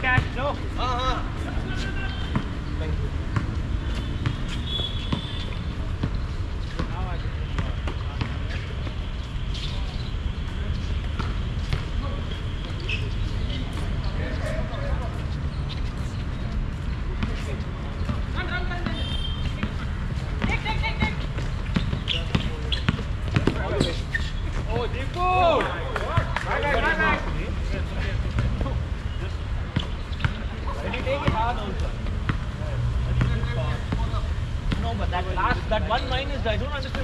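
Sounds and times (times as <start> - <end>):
basketball bouncing on hard court: 20.4 - 23.9.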